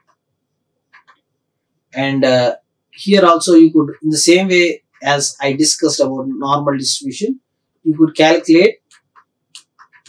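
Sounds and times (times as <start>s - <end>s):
man speaking: 2.0s - 9.0s.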